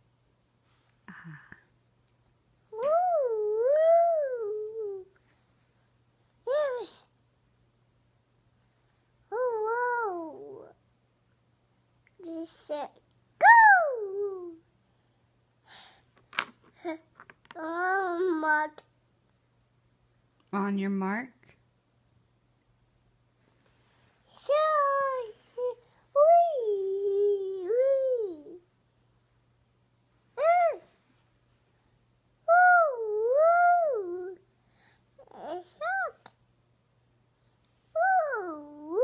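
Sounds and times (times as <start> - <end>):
toddler making race car noise: 38.0 - 39.0.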